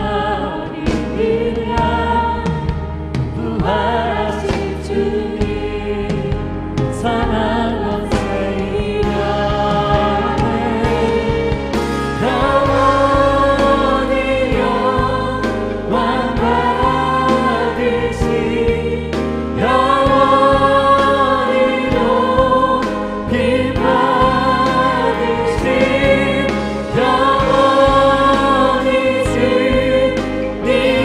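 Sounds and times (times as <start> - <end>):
instrumental accompaniment: 0.0 - 31.0.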